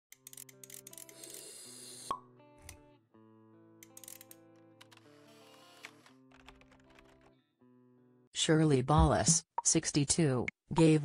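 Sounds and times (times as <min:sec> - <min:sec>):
music: 0:00.1 - 0:09.7.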